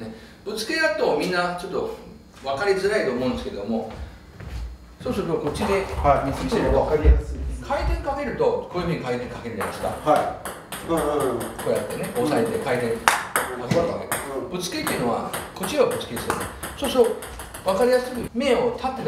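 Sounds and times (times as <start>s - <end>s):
man talking: 5.0s - 19.0s.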